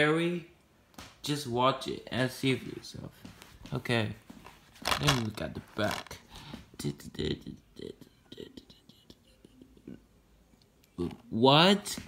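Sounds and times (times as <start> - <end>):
faint whispering: 7.4 - 10.0.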